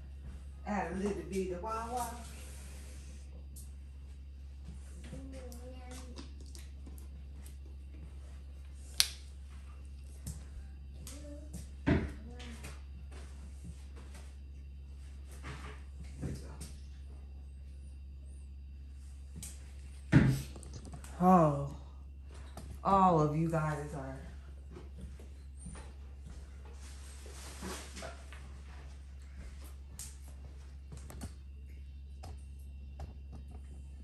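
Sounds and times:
low hum: 0.0s - 34.0s.

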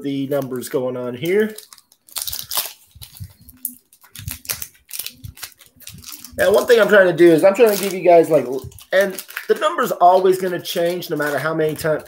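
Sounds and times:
plastic wrapping crinkling: 0.1s - 12.0s.

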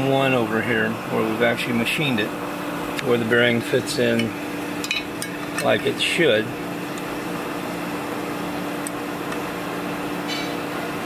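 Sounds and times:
machine-shop hum: 0.0s - 11.0s.

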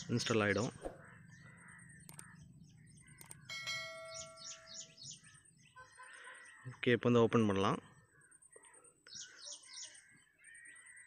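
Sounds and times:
birds chirping faintly: 0.0s - 11.0s
mouse clicks: 2.0s - 2.3s, 3.2s - 3.5s
bell chime ringing: 3.5s - 5.0s.

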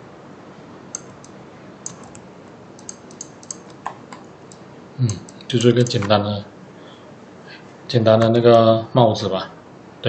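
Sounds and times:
keyboard and mouse clicks: 0.9s - 2.2s, 2.8s - 6.2s.

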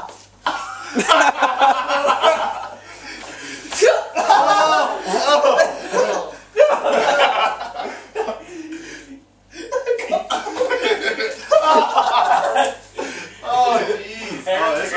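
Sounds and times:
men laughing: 0.4s - 14.9s.

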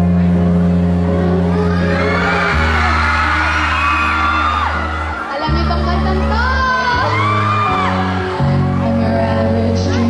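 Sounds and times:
loud music over pa system: 0.0s - 10.0s
crowd screaming and whooping: 1.3s - 10.0s.

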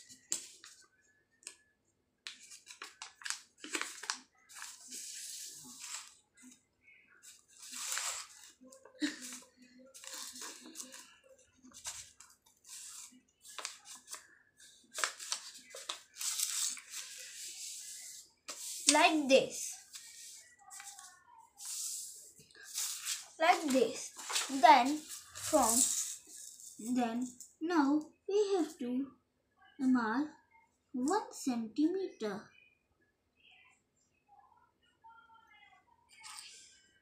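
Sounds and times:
paper being folded and creased: 2.3s - 6.2s, 7.3s - 19.2s, 19.8s - 27.0s.

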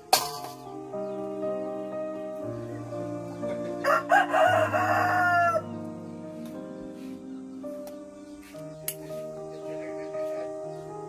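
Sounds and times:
background music: 0.0s - 11.0s
rooster crowing: 3.8s - 5.9s.

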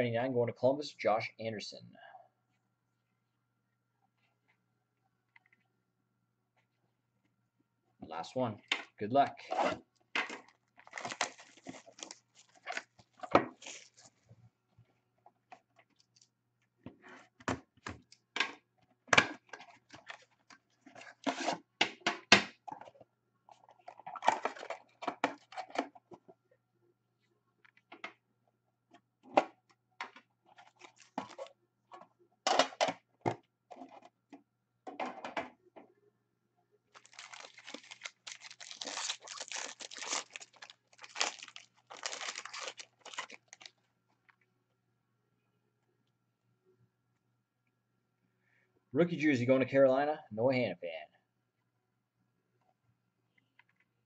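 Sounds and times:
plastic wrap crinkling: 10.3s - 14.2s, 30.6s - 31.5s, 36.9s - 43.8s.

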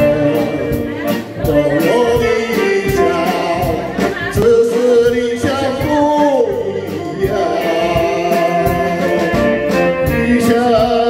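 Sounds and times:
drum kit beat: 0.0s - 11.0s
live band playing: 0.0s - 11.0s
man singing a ballad: 0.0s - 11.0s.

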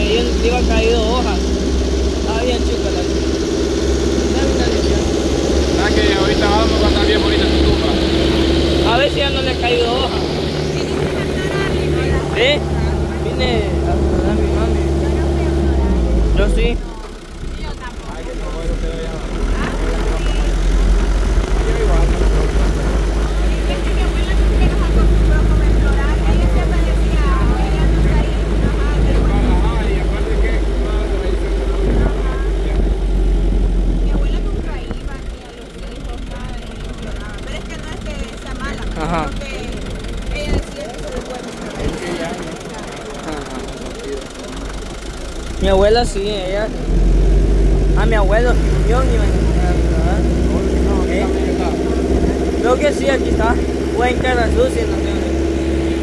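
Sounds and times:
people talking: 0.0s - 46.9s, 47.8s - 56.0s
truck rumbling: 0.0s - 56.0s
wind and road noise: 0.0s - 56.0s.

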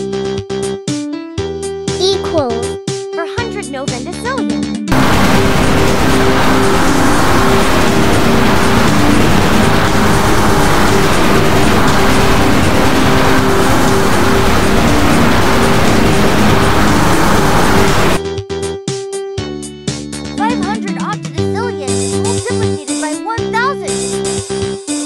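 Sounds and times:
distorted cartoon roaring noise: 4.9s - 18.2s
steady buzzing tone: 4.9s - 18.2s.

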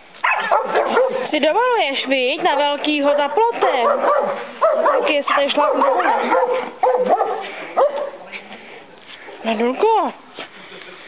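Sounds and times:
dog barking in high yips: 0.2s - 1.2s, 3.2s - 8.2s.

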